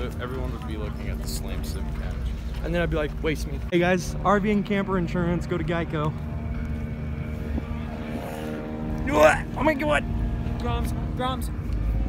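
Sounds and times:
car engine running: 4.3s - 12.0s.

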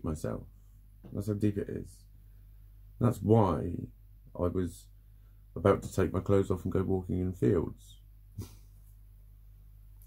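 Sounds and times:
faint low electrical hum: 0.0s - 10.0s.

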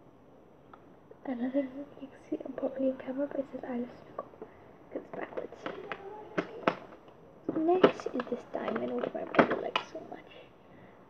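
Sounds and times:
handling clicks and knocks: 4.2s - 10.2s.

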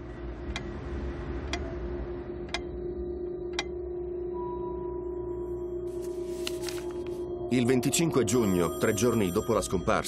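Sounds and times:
low music drone: 0.0s - 10.0s
clock ticking: 0.5s - 0.7s, 2.5s - 2.8s, 3.5s - 3.7s.

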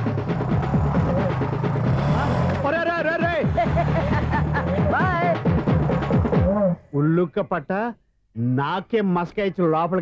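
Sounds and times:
motorcycle engine running: 0.0s - 2.8s.

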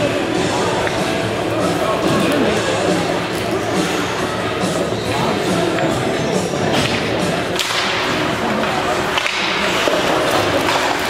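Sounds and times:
rink hubbub: 0.0s - 11.0s
hockey sticks and puck cracking: 6.7s - 11.0s
skates scraping ice: 6.8s - 11.0s.

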